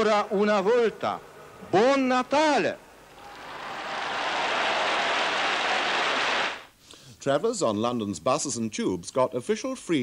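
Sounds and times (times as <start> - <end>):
large crowd applauding: 3.1 - 6.7.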